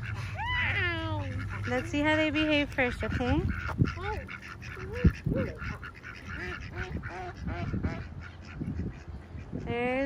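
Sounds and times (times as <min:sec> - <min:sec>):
ducks quacking: 0:00.0 - 0:10.0.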